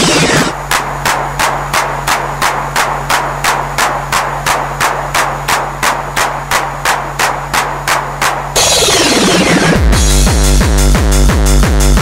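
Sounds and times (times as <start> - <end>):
low bass drone: 0.0 - 12.0
noisy percussion hit: 0.0 - 12.0.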